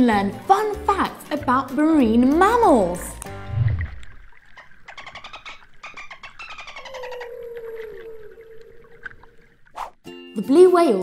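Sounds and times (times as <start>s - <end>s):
underwater clicks: 1.9s - 9.8s.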